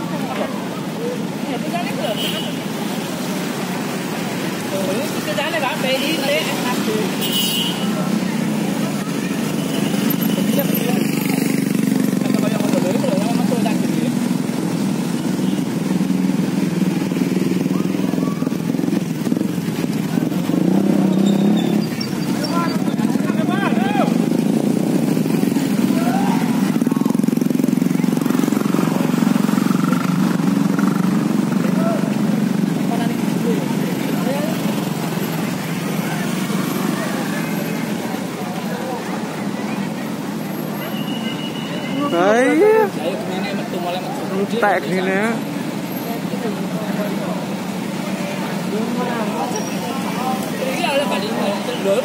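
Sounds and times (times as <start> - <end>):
motorcycle engines passing: 0.0 - 52.0
people calling out: 25.8 - 27.2.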